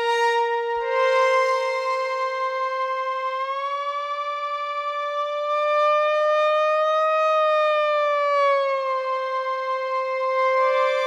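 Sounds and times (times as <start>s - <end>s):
synthesizer note with pitch bend: 0.0s - 5.6s, 9.9s - 11.0s.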